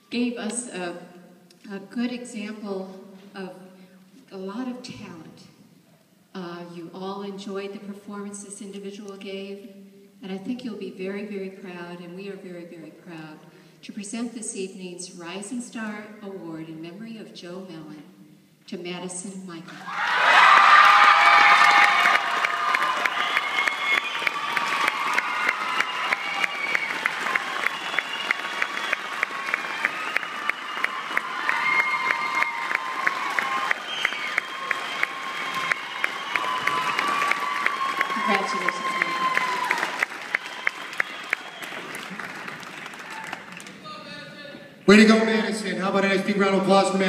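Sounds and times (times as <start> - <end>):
whoops: 19.8 - 42.3, 43.0 - 43.6
audience clapping: 19.8 - 44.0
audience cheering: 19.8 - 44.1.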